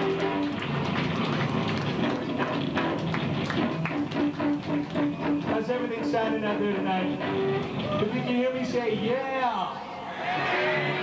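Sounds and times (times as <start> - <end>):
guitar notes: 0.0 - 0.8, 2.0 - 8.0.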